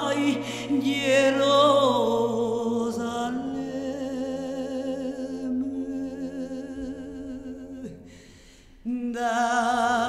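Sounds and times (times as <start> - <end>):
woman singing long note with vibrato: 0.0 - 8.3.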